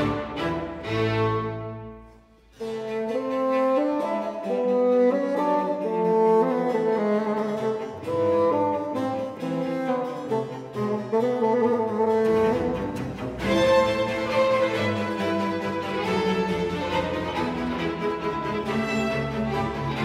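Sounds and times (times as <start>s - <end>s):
bassoon melody: 0.0s - 20.0s
string orchestra: 0.0s - 20.0s.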